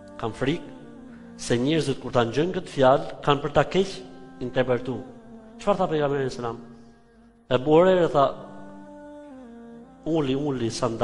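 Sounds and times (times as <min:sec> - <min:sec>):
man's voice: 0:00.0 - 0:06.8, 0:07.4 - 0:09.1, 0:09.9 - 0:11.0.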